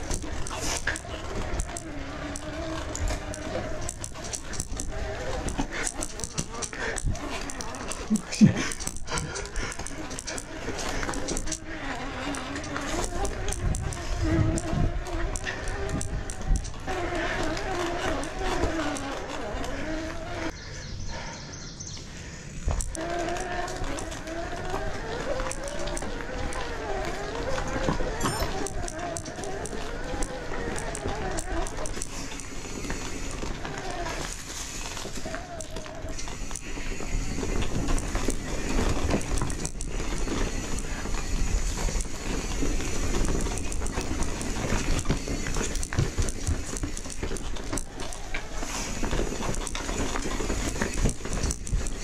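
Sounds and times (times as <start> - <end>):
wavering motor tone: 0.0 - 20.6, 22.8 - 52.0
rider breathing hard: 3.0 - 13.0, 19.6 - 22.9, 30.4 - 52.0
bike clattering over rocks: 22.7 - 52.0.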